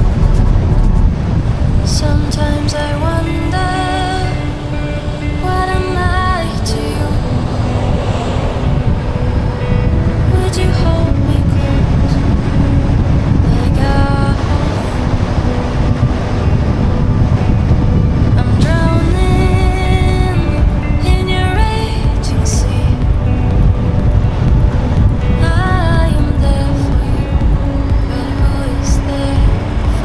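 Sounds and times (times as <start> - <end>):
car tyres and engine rumble: 0.0 - 2.1
melodic music: 0.0 - 30.0.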